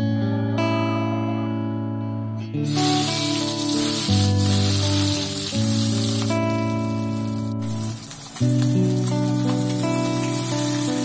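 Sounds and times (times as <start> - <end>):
background music with held notes: 0.0 - 11.0
fish sizzling in hot oil: 2.7 - 11.0.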